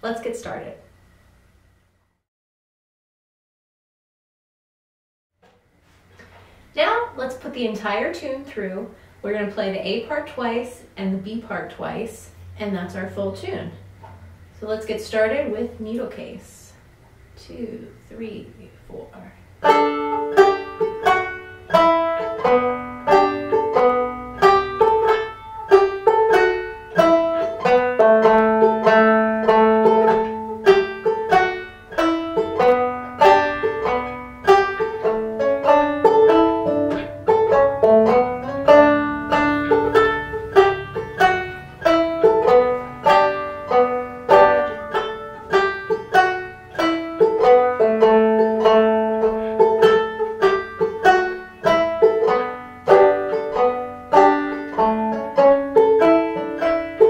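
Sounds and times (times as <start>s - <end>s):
banjo playing old-time tune: 19.6s - 57.0s.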